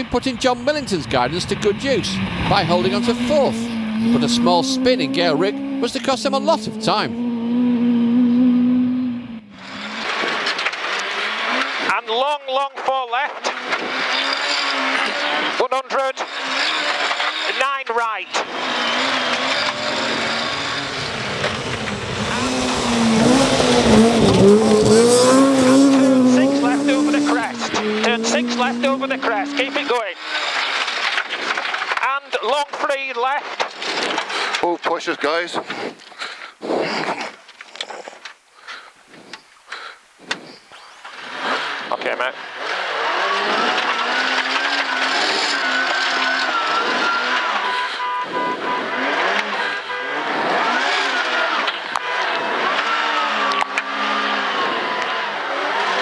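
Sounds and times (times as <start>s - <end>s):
rally car engines revving: 0.0s - 38.8s, 39.8s - 56.0s.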